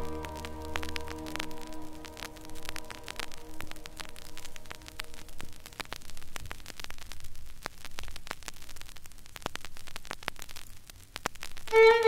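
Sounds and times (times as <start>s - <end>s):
string quartet chord: 0.0s - 3.8s
crackling static: 0.0s - 12.0s.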